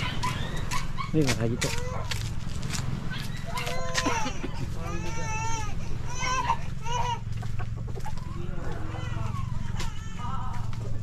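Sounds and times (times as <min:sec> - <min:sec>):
chickens clucking: 0:06.2 - 0:09.9.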